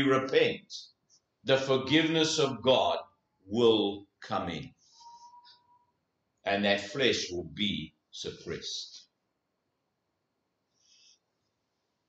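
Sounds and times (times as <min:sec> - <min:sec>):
faint high-pitched sound: 0:04.8 - 0:06.0.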